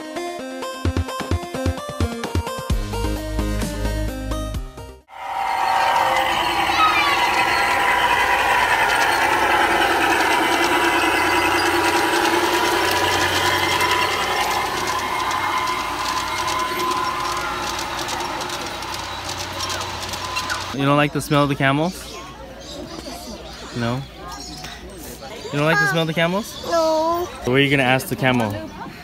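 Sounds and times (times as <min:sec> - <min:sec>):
model trains rumbling: 0:05.1 - 0:20.8
crowd chatter: 0:05.2 - 0:29.0.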